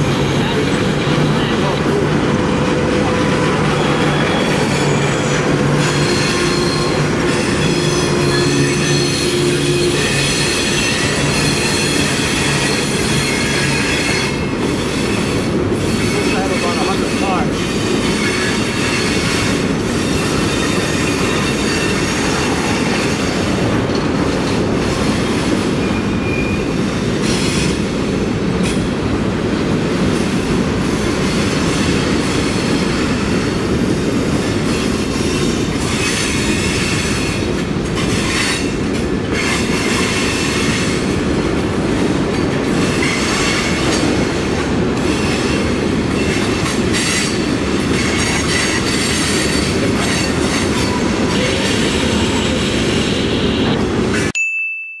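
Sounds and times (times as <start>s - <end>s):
train wheels rumbling on rails: 0.0s - 54.4s.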